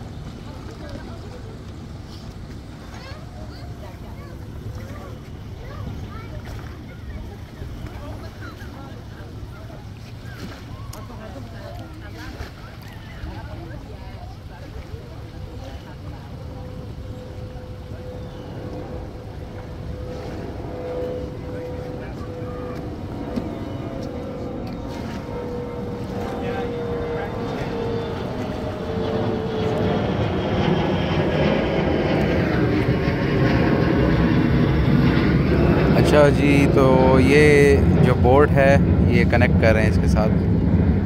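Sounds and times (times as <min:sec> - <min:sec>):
engine drone approaching: 0:00.0 - 0:41.0.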